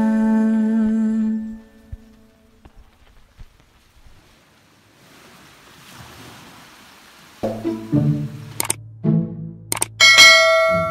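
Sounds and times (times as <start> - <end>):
mouse clicks: 9.7 - 9.9.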